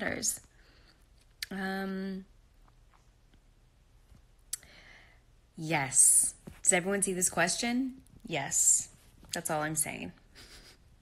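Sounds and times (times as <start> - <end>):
faint breath: 4.6 - 5.3.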